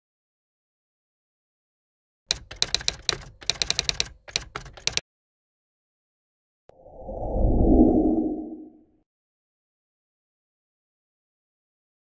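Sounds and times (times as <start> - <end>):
typewriter keys striking: 2.3 - 5.0.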